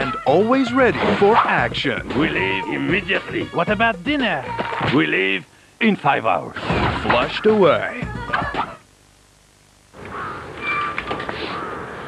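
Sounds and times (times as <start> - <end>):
steady outdoor hiss: 0.0 - 12.0
birds calling: 10.0 - 12.0
short high-pitched bird calls: 10.2 - 11.0.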